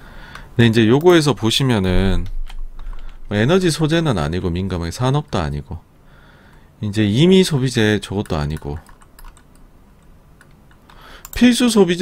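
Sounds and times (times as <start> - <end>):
low steady hum: 0.0 - 12.0
keyboard and mouse clicks: 1.9 - 3.4, 8.2 - 12.0.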